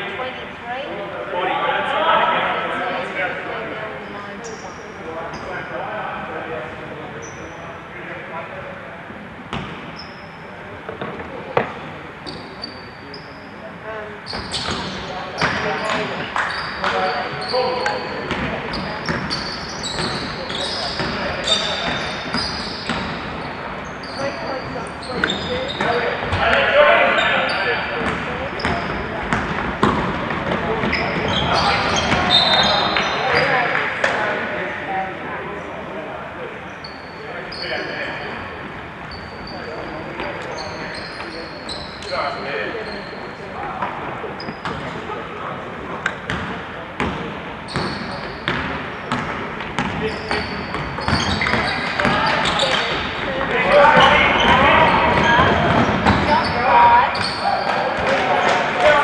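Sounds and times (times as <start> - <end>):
players and spectators voices: 0.0 - 59.0
shoe squeaks: 4.4 - 5.6, 7.2 - 7.6, 10.0 - 10.5, 12.2 - 13.6, 14.2 - 26.3, 30.7 - 33.7, 36.7 - 38.4, 39.0 - 43.4, 44.3 - 45.0, 47.6 - 49.2, 50.0 - 58.0
basketball bouncing: 47.8 - 53.0.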